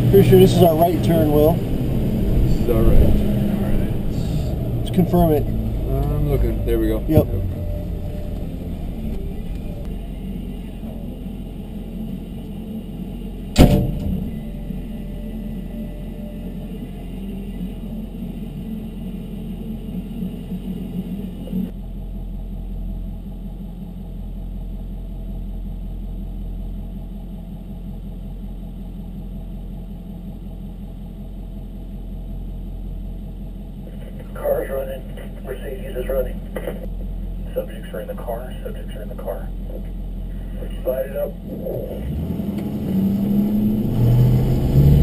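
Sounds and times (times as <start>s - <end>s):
vehicle engine drone: 0.0s - 45.0s
sharp loud knock: 13.6s - 14.3s.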